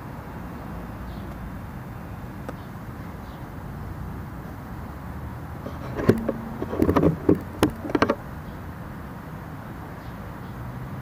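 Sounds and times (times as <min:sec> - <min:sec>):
sharp taps and knocks: 0:05.7 - 0:08.2.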